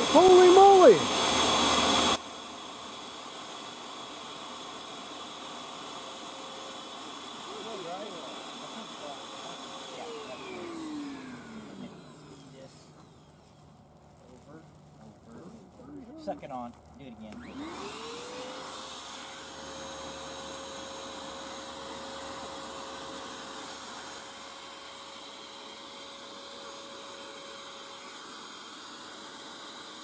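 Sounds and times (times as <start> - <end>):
vacuum hissing: 0.0 - 30.0
vacuum motor whine: 0.0 - 30.0.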